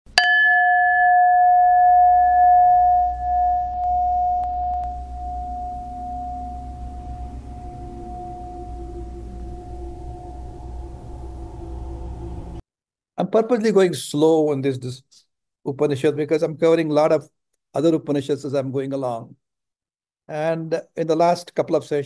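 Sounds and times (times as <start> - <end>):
bell ringing: 0.1 - 12.4
low steady hum: 0.2 - 12.6.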